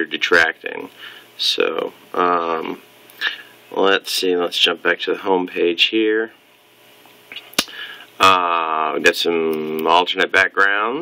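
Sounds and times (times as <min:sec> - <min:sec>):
man speaking: 0:00.0 - 0:06.4, 0:08.2 - 0:11.0.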